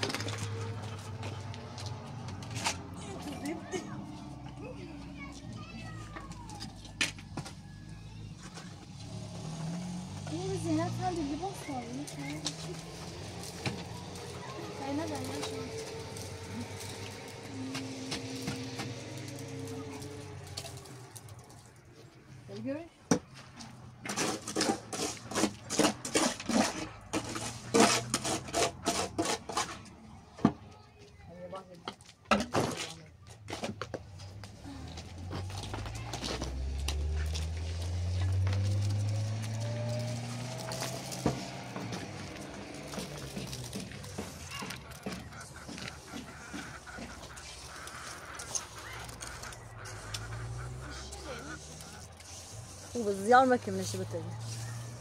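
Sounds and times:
trowel scraping and knocking: 0:24.0 - 0:30.6
low engine-like sound rising: 0:34.2 - 0:44.3.

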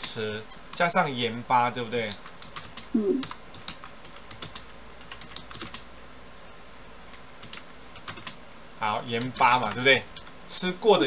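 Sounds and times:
computer keyboard typing: 0:02.0 - 0:05.9, 0:07.1 - 0:08.4, 0:09.1 - 0:10.4.

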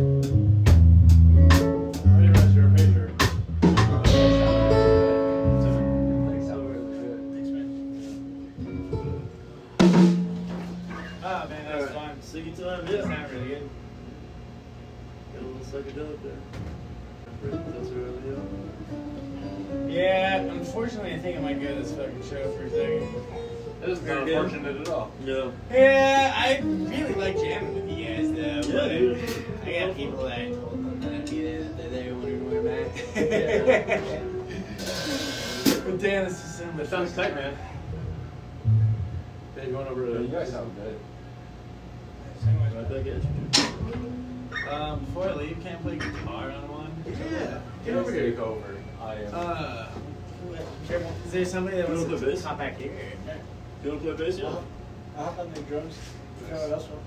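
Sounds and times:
electric guitar chord ringing: 0:03.8 - 0:11.9, 0:17.4 - 0:40.4, 0:42.3 - 0:49.0
voices: 0:20.2 - 0:41.3.

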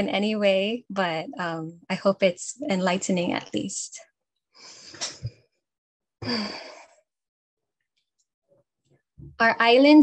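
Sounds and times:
woman sighing: 0:06.2 - 0:06.9.

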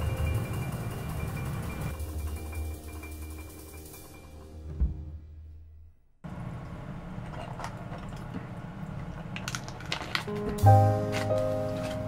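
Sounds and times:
background music: 0:00.0 - 0:05.4, 0:10.3 - 0:12.0.

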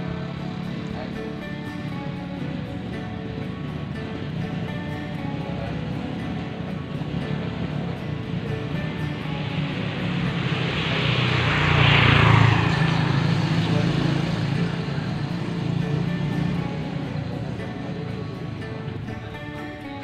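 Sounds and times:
background music: 0:00.0 - 0:20.0
motor vehicle passing by: 0:00.0 - 0:20.0.

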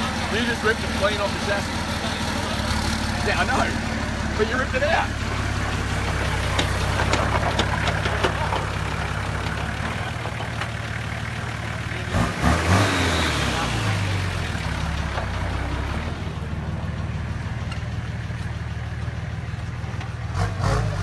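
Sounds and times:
engine idling: 0:00.0 - 0:21.0.

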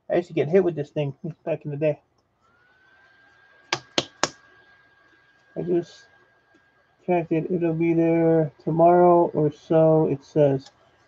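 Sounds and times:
wooden ruler slapping a hand: 0:03.7 - 0:04.4.

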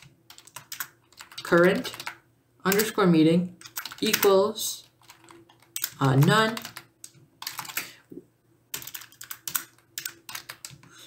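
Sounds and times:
keyboard typing: 0:00.0 - 0:03.0, 0:03.6 - 0:08.0, 0:08.7 - 0:11.0.

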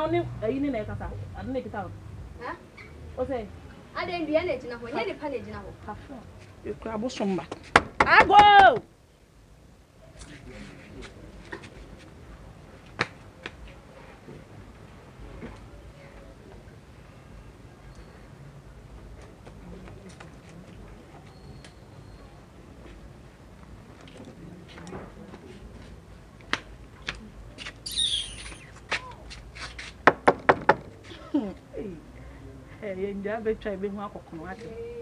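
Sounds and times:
bird chirp: 0:27.8 - 0:28.8.

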